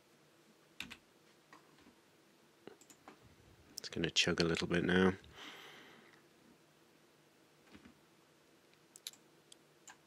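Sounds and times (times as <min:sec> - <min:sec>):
keyboard and mouse clicks: 0:00.8 - 0:01.8, 0:02.7 - 0:03.2, 0:08.9 - 0:10.0.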